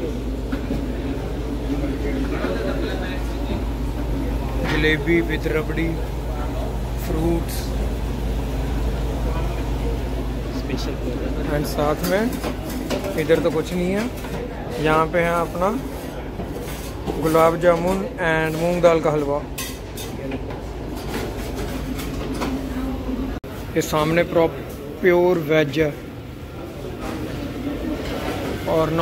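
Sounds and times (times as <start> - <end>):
faint indistinct voices: 0.0 - 29.0
restaurant room rumble: 0.0 - 29.0.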